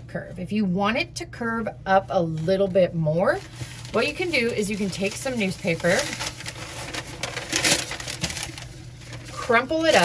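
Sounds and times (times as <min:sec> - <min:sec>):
newspaper rustling and crumpling: 0:03.2 - 0:10.0.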